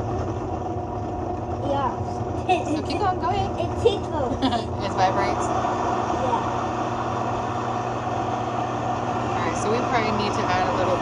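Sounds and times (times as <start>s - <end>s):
blender motor running: 0.0s - 11.0s.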